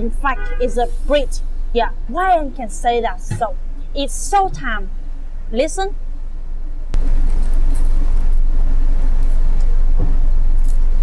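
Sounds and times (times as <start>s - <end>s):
low rumble of handling noise: 0.0s - 11.0s.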